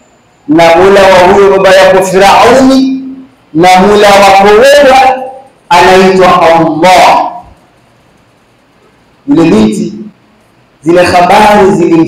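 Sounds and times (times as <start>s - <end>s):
low room noise: 0.0s - 12.0s
man's raised voice: 0.5s - 7.4s, 10.8s - 12.0s.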